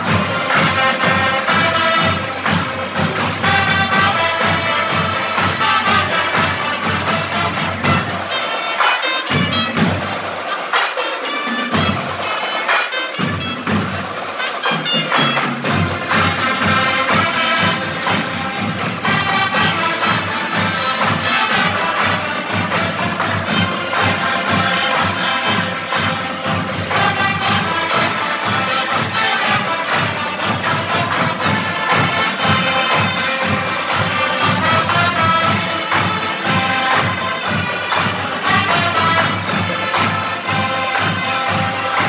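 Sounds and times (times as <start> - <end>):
marching band playing: 0.0 - 42.0.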